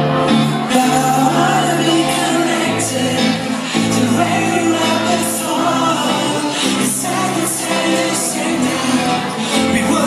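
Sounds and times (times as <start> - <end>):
live pop-rock band with singing: 0.0 - 10.0.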